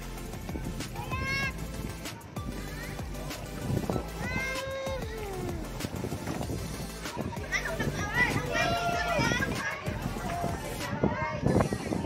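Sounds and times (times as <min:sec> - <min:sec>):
boat engine humming: 0:00.0 - 0:10.8
people calling out: 0:04.0 - 0:05.7, 0:07.0 - 0:11.7.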